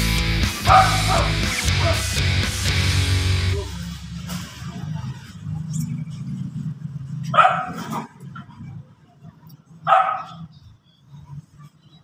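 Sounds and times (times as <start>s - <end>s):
dog barking: 0.6s - 2.0s, 7.2s - 8.2s, 9.8s - 10.5s.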